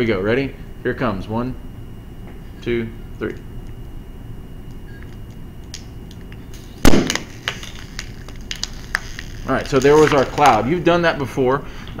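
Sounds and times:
plastic bottle crinkling: 7.0 - 10.6.

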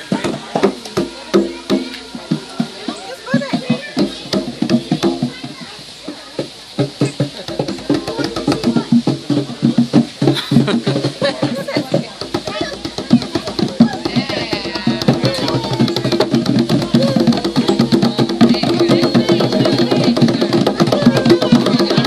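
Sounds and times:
djembe hand drum beats: 0.0 - 22.0
voices: 0.0 - 22.0.

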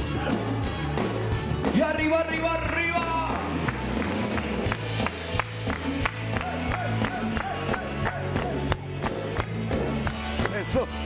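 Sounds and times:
live band playing instrumental: 0.0 - 11.0.

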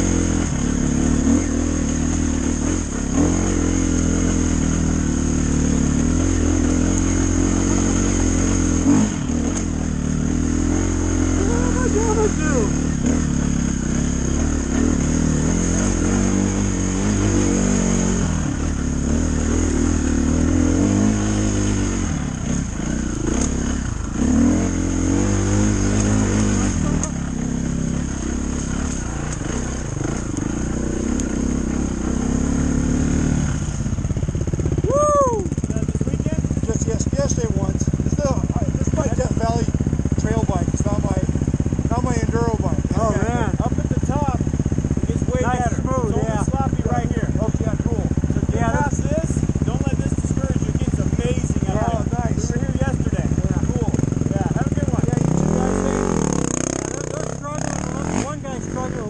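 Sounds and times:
dirt bike engine idling: 0.0 - 59.0
dirt bike engine revving: 0.0 - 59.0.

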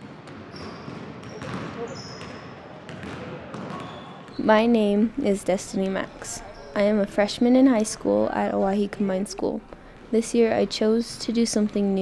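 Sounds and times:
basketballs bouncing on wooden court: 0.0 - 5.2.

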